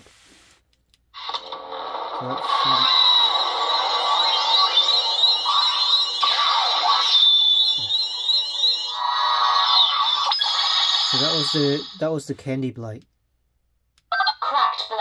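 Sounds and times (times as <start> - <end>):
lightsaber electronic hum: 1.2 - 11.9.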